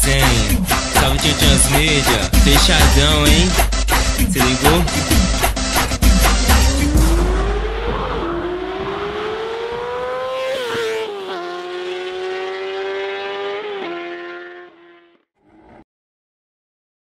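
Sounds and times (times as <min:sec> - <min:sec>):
motorcycle engine accelerating: 0:05.9 - 0:15.8.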